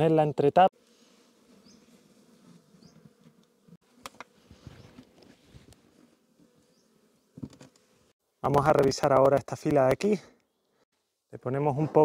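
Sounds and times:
bees buzzing: 0.7s - 8.2s.

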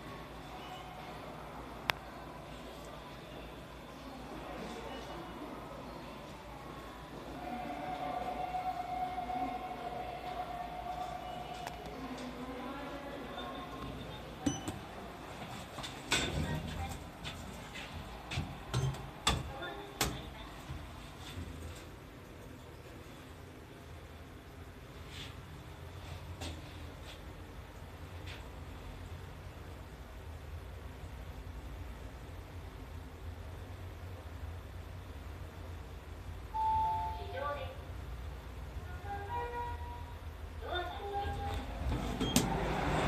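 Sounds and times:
elevator hum: 0.0s - 43.0s.

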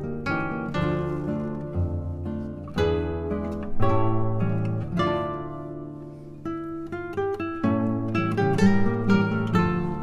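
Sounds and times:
classical guitars playing: 0.0s - 10.0s.

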